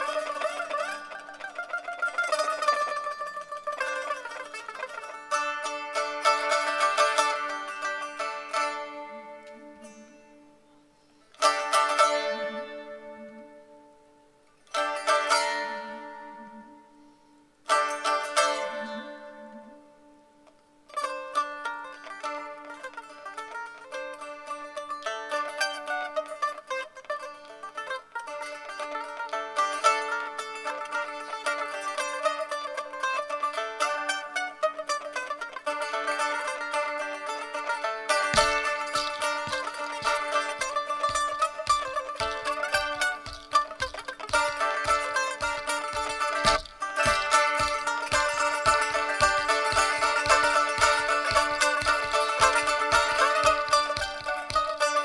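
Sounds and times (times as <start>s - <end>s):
long-necked lute strummed chords: 0.0s - 10.8s, 11.4s - 55.0s
lute plucked melody: 0.0s - 55.0s.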